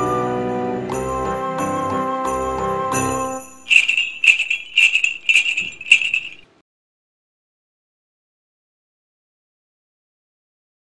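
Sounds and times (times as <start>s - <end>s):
soft music: 0.0s - 4.4s
jingle bells shaken: 3.1s - 6.5s.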